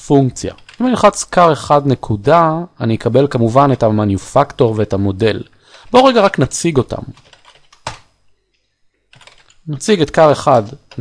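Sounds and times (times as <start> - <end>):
computer keyboard keystrokes: 7.2 - 8.1, 9.1 - 9.6.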